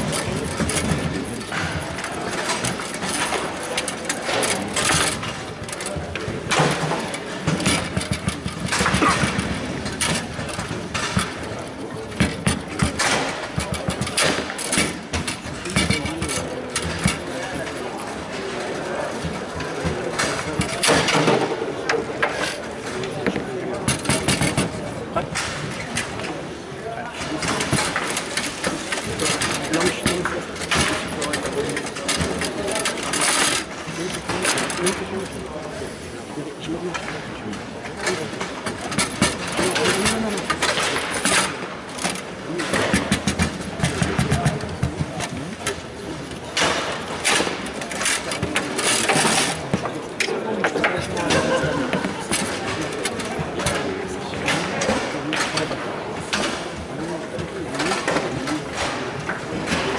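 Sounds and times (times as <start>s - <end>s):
foosball ball and rods clacking: 0.0s - 26.4s, 37.0s - 59.9s.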